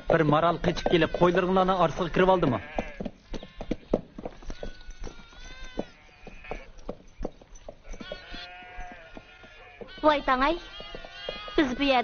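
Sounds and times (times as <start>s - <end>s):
sheep bleating: 0.2s - 3.7s, 4.4s - 6.7s, 7.8s - 12.0s.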